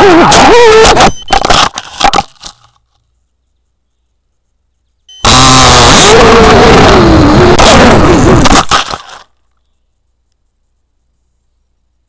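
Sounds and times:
camera crunching in pine needles: 8.4 - 9.7.

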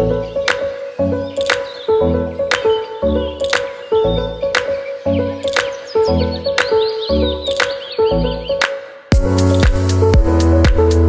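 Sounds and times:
high chirping glides: 0.0 - 10.6
sustained bass and mid notes: 9.1 - 11.0.

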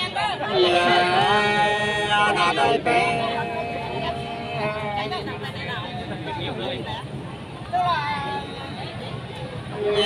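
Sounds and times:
folk singing voice: 0.0 - 5.5, 9.7 - 10.0
murmur of voices: 0.0 - 10.0.

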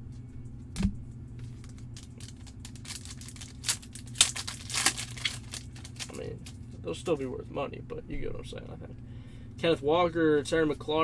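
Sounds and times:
plastic crinkles and clicks: 1.5 - 6.6.

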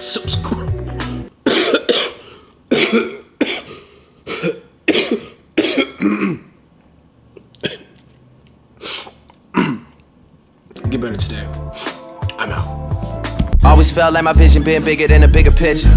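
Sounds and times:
man coughing: 1.4 - 6.6, 7.6 - 8.0, 9.5 - 10.0.

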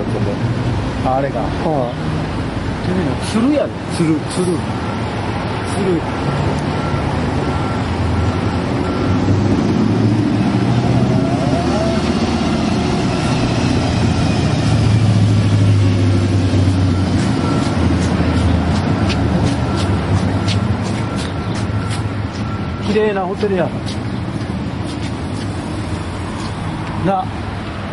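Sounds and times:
vehicle engine rumble passing: 0.0 - 27.9.

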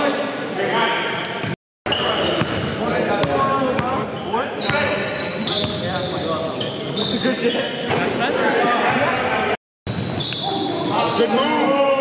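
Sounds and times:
players' voices echoing: 0.0 - 9.6
sneakers squeaking: 1.1 - 8.5, 9.9 - 12.0.

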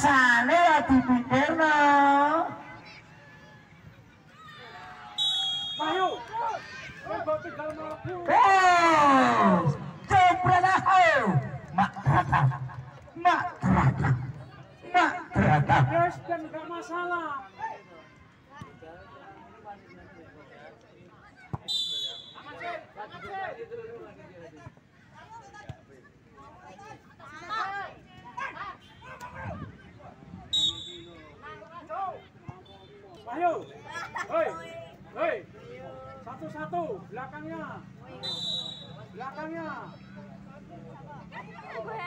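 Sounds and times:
players and spectators chattering: 0.0 - 42.0
high-pitched whistle blast: 5.2 - 6.0, 38.2 - 39.0.

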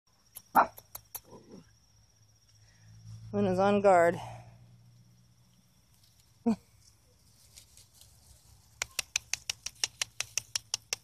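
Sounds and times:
sharp clicks: 0.3 - 1.3, 8.7 - 11.0.

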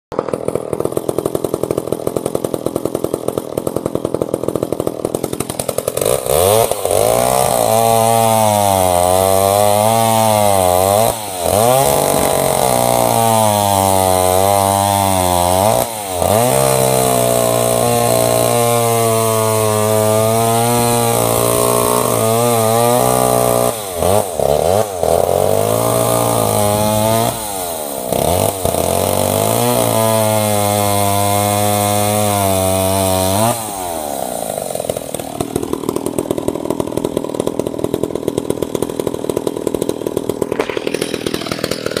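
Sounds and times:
chainsaw cutting logs: 0.1 - 42.0
chainsaw idling: 0.1 - 42.0.

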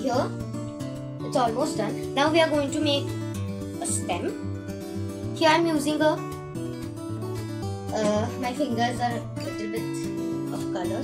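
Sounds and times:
acoustic guitar music: 0.0 - 11.0.

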